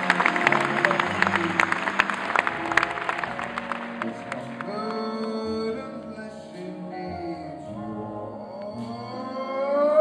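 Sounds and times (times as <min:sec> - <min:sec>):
big band sustaining chords: 0:00.0 - 0:09.7
man singing long wordless note: 0:04.1 - 0:10.0.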